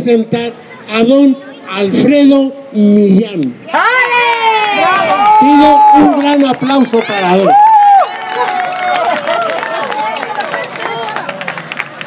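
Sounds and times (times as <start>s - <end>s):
audience clapping: 5.7s - 12.0s.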